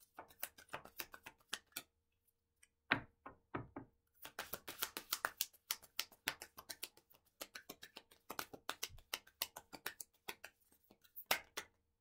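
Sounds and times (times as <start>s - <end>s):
cards being shuffled: 0.1s - 1.9s, 4.2s - 11.6s.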